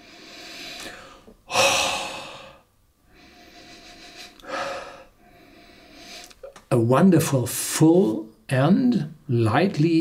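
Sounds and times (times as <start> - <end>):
man breathing and sniffing: 0.0 - 6.6.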